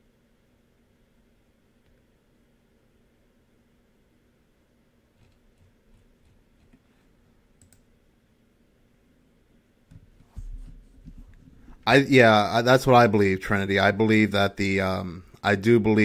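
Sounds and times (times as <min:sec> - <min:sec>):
computer mouse clicks: 0:05.1 - 0:06.9, 0:07.6 - 0:07.9.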